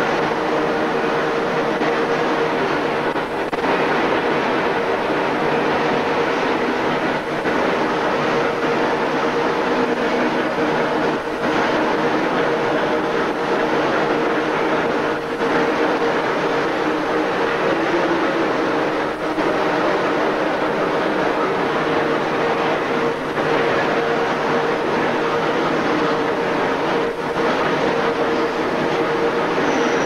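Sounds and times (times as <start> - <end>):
machinery gearing running: 0.0 - 30.0.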